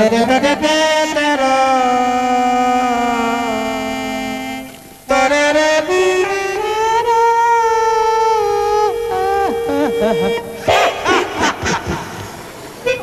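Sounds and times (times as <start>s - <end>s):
man vocalising wordlessly: 7.6s - 10.5s.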